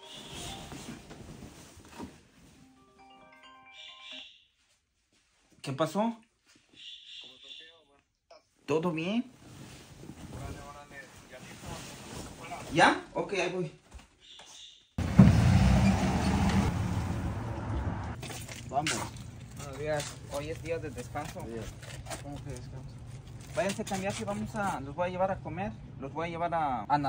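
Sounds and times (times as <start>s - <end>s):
phone ringtone melody: 2.7s - 4.3s.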